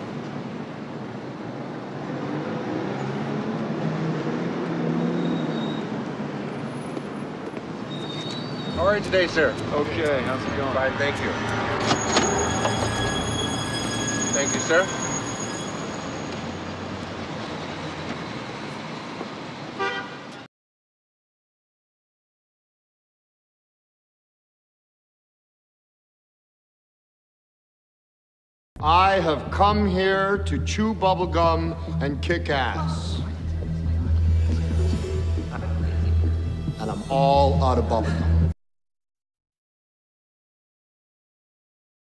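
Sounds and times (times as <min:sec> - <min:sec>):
vehicle engine hum passing: 0:00.0 - 0:07.9
city street traffic: 0:00.0 - 0:20.5, 0:28.8 - 0:38.6
car horn toot: 0:19.8 - 0:20.4.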